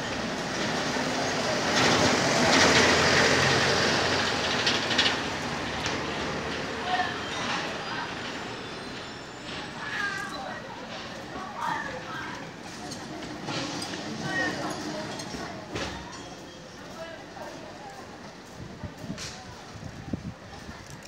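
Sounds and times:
street noise: 0:00.0 - 0:21.0
truck driving past: 0:00.1 - 0:06.8.

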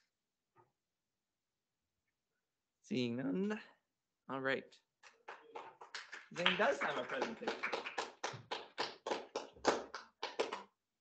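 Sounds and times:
people clapping: 0:05.0 - 0:10.8.

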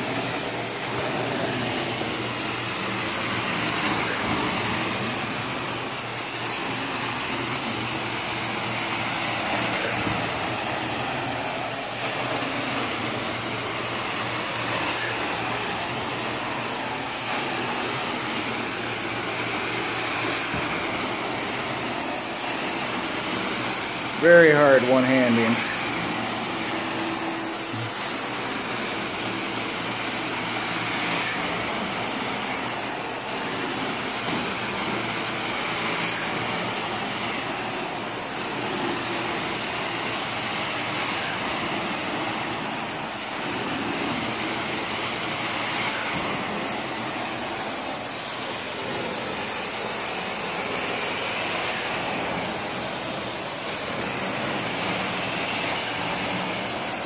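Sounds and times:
carpet cleaner suction hiss: 0:00.0 - 0:57.0.

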